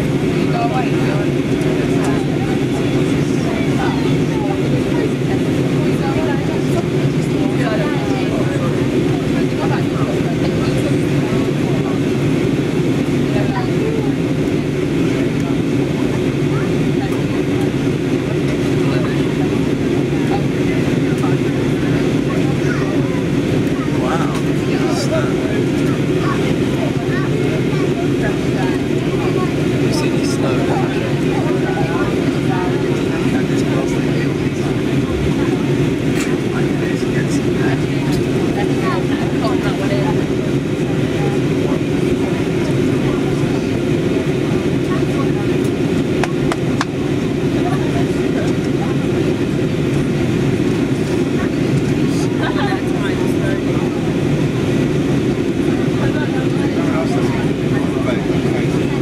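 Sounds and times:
jet cabin engine rumble: 0.0 - 59.0
passengers murmuring: 0.0 - 59.0.

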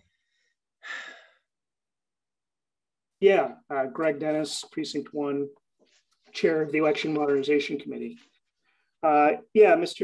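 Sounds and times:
person sighing: 0.8 - 1.5.

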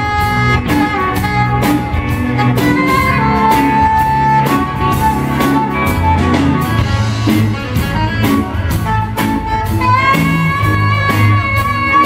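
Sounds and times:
reggae funk band jamming: 0.0 - 12.0.

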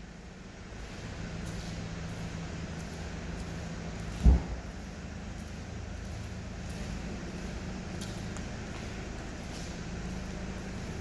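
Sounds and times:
steady low hum: 0.0 - 11.0
dull low thump: 4.1 - 4.8.

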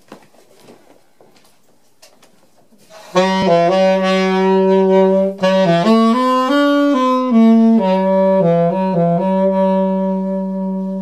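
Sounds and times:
faint footsteps and shuffling: 0.0 - 3.8.

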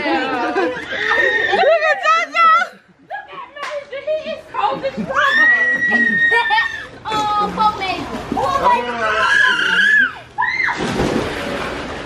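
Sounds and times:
children shouting and shrieking: 5.2 - 7.0, 8.8 - 10.8.

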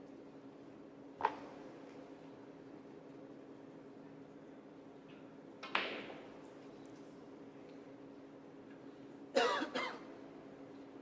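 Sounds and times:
quiet arena hum: 0.0 - 11.0
person coughing: 9.4 - 10.0.

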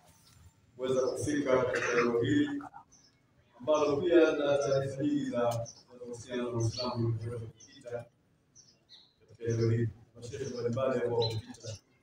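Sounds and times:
man speaking into a microphone: 0.8 - 2.9, 3.6 - 8.2, 9.3 - 11.8.

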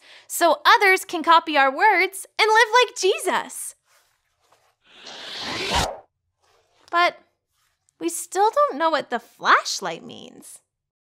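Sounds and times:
rasping sound effect: 4.9 - 6.0.

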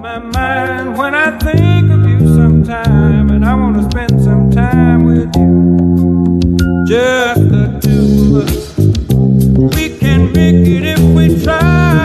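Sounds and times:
electric bass guitar low notes: 0.0 - 12.0.

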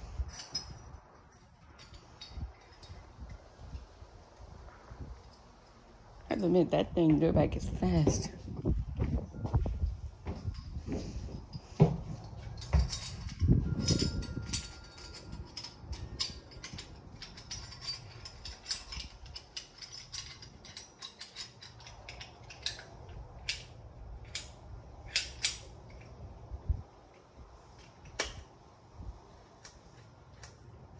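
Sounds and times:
metallic clicks of hand tools: 12.6 - 26.1, 27.8 - 28.5, 29.6 - 30.6.

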